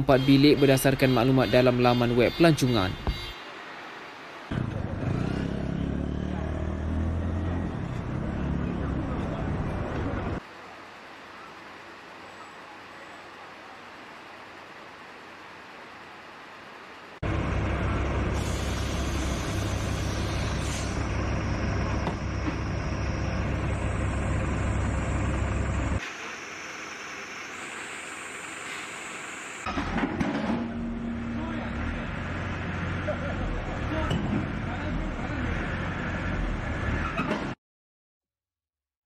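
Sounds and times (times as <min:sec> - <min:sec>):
street noise: 0:00.0 - 0:37.6
truck engine idling: 0:07.8 - 0:30.0
voices: 0:08.1 - 0:15.7
knocks and clatter: 0:29.7 - 0:30.8.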